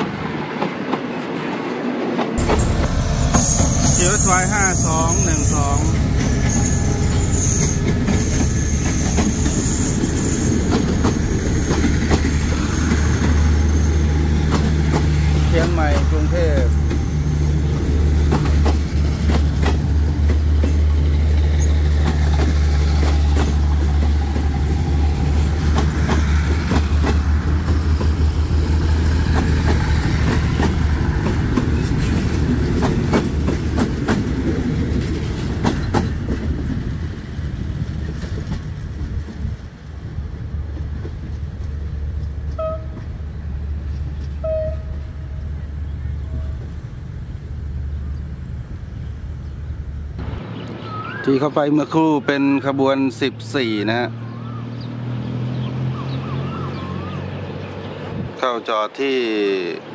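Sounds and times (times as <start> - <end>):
train wheels clicking over rail joints: 2.2 - 39.7.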